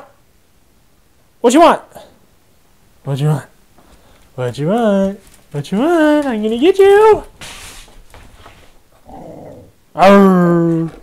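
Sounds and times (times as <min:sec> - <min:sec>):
dog growling softly: 0:08.9 - 0:09.8.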